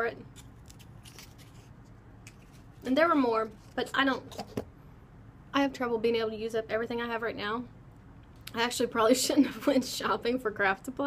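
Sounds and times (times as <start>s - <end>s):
tape package crinkling: 0.4s - 2.9s.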